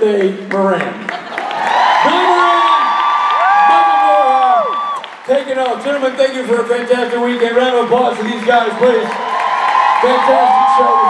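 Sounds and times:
audience cheering and whooping: 1.2s - 5.7s, 8.1s - 11.0s.

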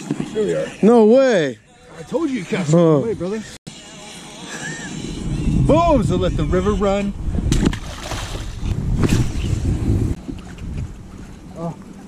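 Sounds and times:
wind buffeting microphone: 5.0s - 12.0s.

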